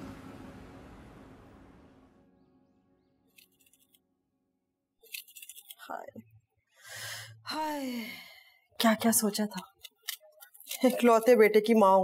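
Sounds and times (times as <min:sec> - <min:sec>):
woman speaking: 0:05.8 - 0:06.2, 0:07.5 - 0:09.8, 0:10.7 - 0:12.0
woman breathing in: 0:06.8 - 0:08.6.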